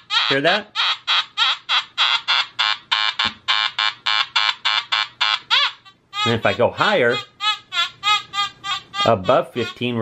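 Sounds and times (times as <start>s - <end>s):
metal detector buzzy tones: 2.0s - 10.0s.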